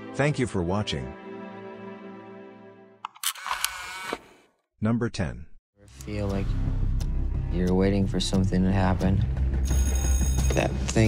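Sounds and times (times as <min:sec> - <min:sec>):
camera shutter clicks: 0:03.1 - 0:04.3.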